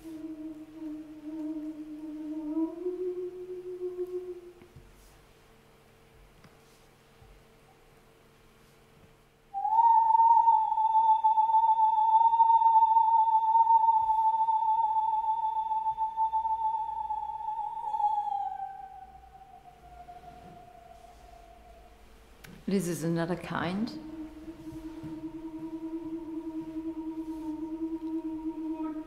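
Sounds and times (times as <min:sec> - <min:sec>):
woman singing high sustained note: 0:00.0 - 0:04.8, 0:09.5 - 0:29.0.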